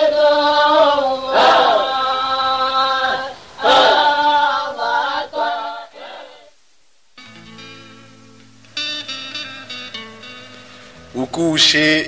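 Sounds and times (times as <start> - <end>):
chanted singing: 0.0 - 6.6.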